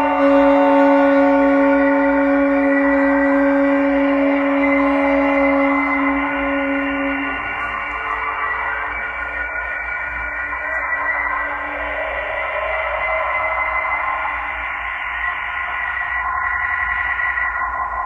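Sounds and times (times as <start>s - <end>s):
held horn note: 0.0s - 8.8s
sustained droning tones: 0.0s - 18.0s.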